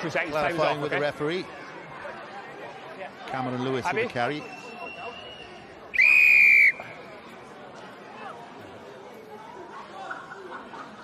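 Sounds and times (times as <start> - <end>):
crowd chatter: 0.0 - 11.0
referee's whistle blast: 4.4 - 7.0.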